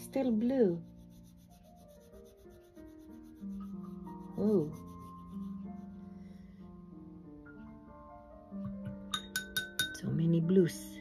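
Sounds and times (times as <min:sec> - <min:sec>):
paintbrush rubbing on paper: 0:00.0 - 0:06.4
soft background music: 0:00.0 - 0:11.0.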